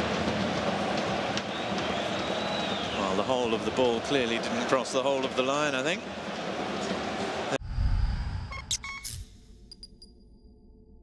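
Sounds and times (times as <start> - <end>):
short high electronic bleeps: 8.4 - 9.3.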